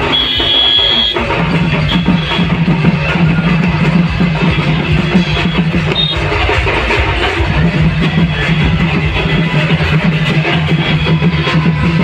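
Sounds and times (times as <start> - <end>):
loud dj music with bass beat: 0.0 - 12.0.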